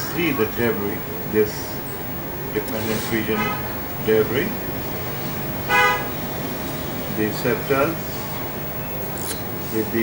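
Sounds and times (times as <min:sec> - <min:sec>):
low background hum: 0:00.0 - 0:10.0
vehicle horn toot: 0:03.3 - 0:03.7, 0:05.7 - 0:06.1.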